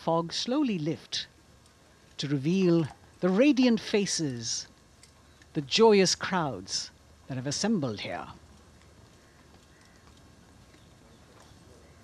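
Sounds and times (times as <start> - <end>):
low background haze: 0.0 - 12.0.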